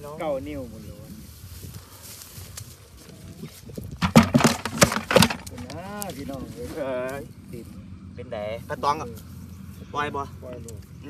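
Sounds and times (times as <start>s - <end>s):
fish thrashing in plastic bucket: 3.9s - 5.7s.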